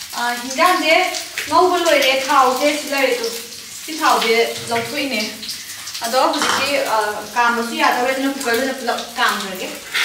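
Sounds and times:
food sizzling in a wok: 0:00.0 - 0:10.0
woman talking: 0:00.2 - 0:05.4, 0:06.0 - 0:09.8.

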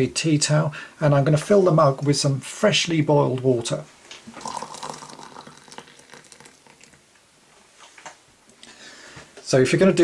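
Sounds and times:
water pouring into ceramic mug: 0:04.3 - 0:07.0.

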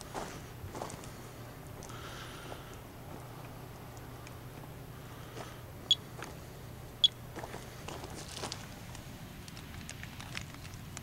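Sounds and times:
steps on wood-chip mulch: 0:00.0 - 0:02.7, 0:05.3 - 0:06.5, 0:07.3 - 0:09.0.

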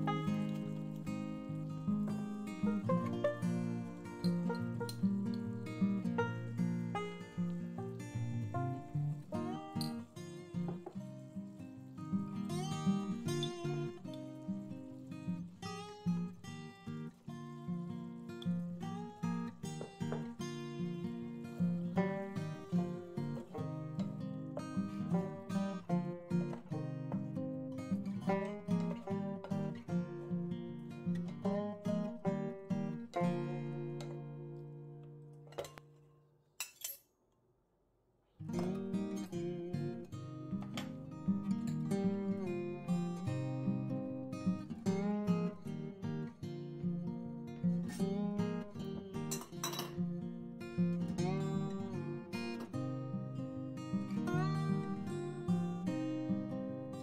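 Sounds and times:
acoustic guitar music: 0:00.0 - 0:36.4, 0:38.4 - 0:57.0.

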